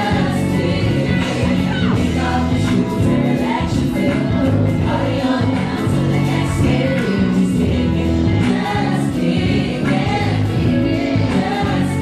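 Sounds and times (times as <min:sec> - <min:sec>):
backing track with bass line: 0:00.0 - 0:12.0
woman singing into microphone: 0:00.0 - 0:12.0.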